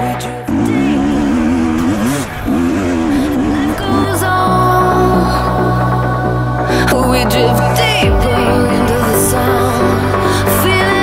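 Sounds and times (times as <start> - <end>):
dirt bike engine revving hard: 0.0 - 6.1.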